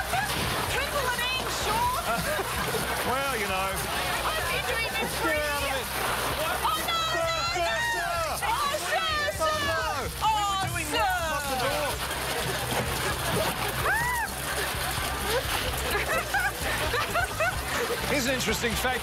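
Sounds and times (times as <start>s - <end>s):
people laughing: 0.0s - 19.0s
people shouting excitedly: 6.4s - 12.0s, 13.5s - 14.5s.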